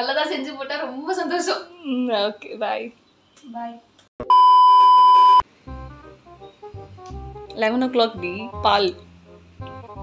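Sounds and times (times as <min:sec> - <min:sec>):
loud electronic beep: 0:04.2 - 0:05.4
background music: 0:05.5 - 0:10.0.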